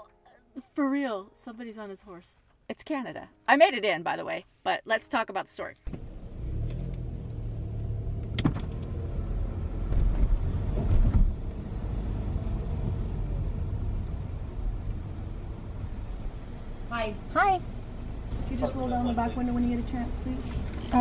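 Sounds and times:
car engine and road rumble: 0:05.8 - 0:21.0.

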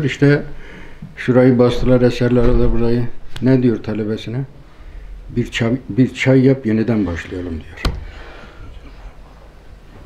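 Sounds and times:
steady low hum: 0:00.0 - 0:10.0
faint breath: 0:00.6 - 0:01.2, 0:04.6 - 0:05.2, 0:08.0 - 0:09.2.

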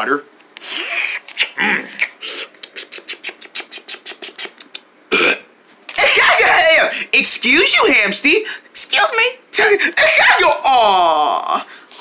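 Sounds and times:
gulping clicks of mouth: 0:01.3 - 0:04.9
loud burp: 0:05.1 - 0:05.5.

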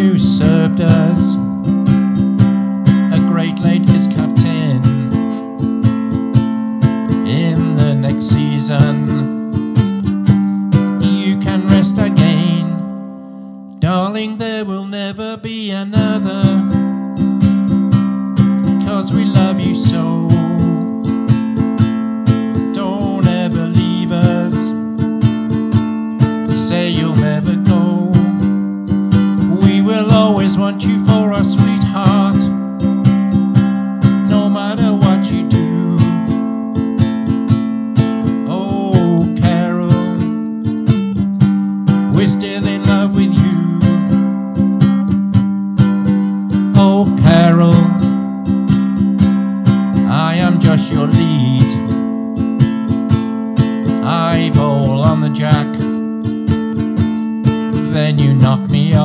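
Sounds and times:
strummed acoustic string instrument: 0:00.0 - 0:59.0.

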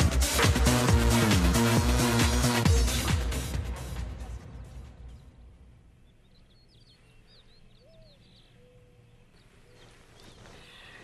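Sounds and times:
birds chirping: 0:04.7 - 0:11.0.

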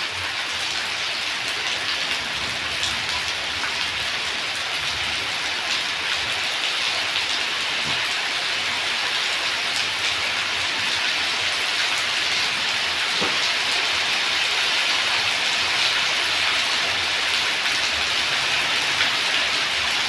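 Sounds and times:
heavy rain on concrete: 0:00.0 - 0:20.0.

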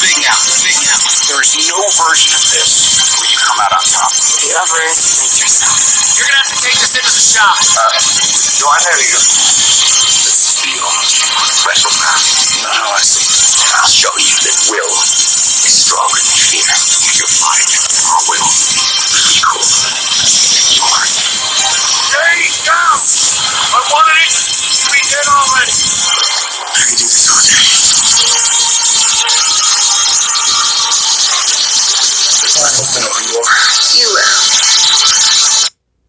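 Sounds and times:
snatches of voices: 0:00.0 - 0:35.7
sound effects: 0:00.0 - 0:35.7.

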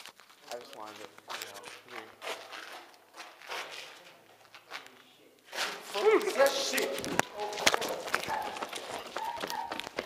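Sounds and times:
running footsteps: 0:05.6 - 0:10.0.

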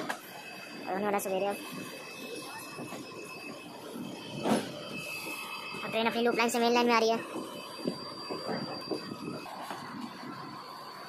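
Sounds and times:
thin high whine: 0:00.0 - 0:11.0
train running noise: 0:00.0 - 0:11.0.

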